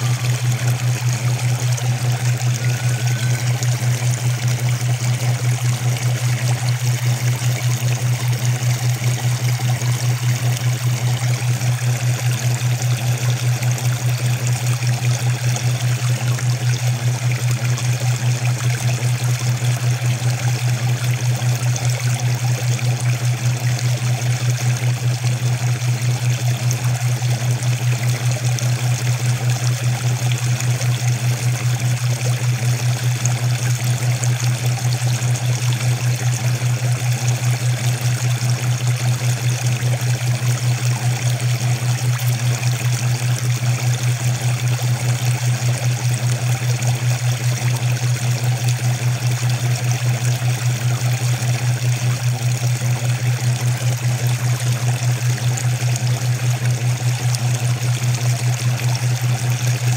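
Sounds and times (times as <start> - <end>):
pulsing low hum: 0.0 - 59.9
running water: 0.0 - 59.9.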